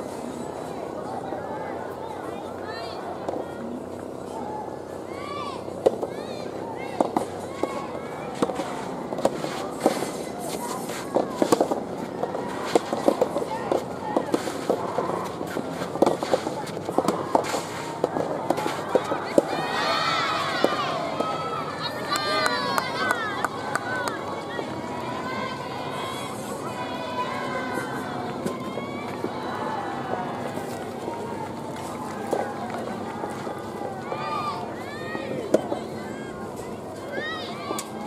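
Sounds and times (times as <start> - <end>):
tennis balls popping off rackets: 7.0 - 19.6.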